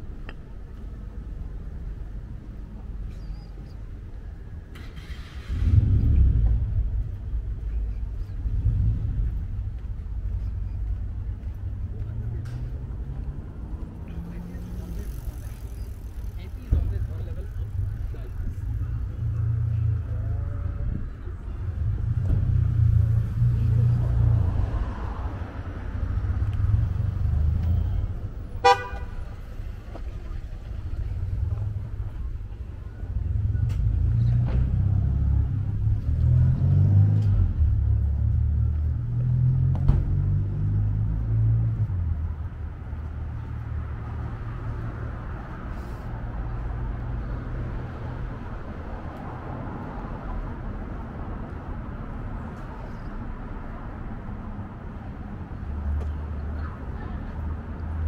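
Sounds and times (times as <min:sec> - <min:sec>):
road traffic passing: 0:00.0 - 0:58.0
car horn beep: 0:28.6 - 0:29.2.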